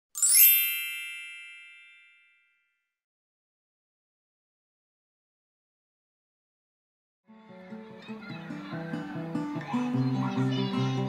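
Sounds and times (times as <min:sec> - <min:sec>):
bright chime ringing: 0:00.2 - 0:02.6.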